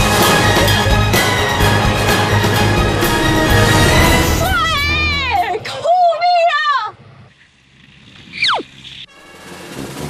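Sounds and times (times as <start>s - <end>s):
rushing whoosh: 2.4s - 4.9s.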